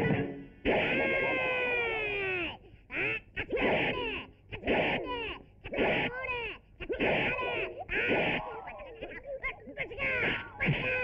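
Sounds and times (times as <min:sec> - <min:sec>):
fighters yelling: 0:03.0 - 0:11.0.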